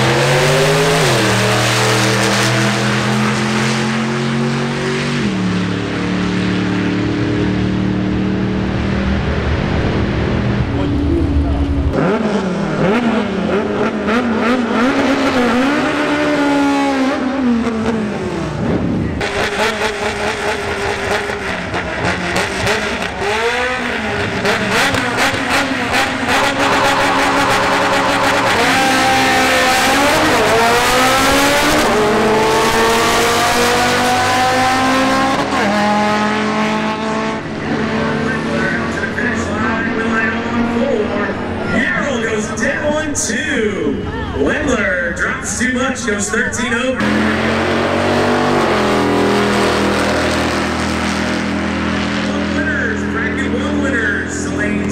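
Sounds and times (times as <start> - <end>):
racing engines revving: 0.0 - 54.9.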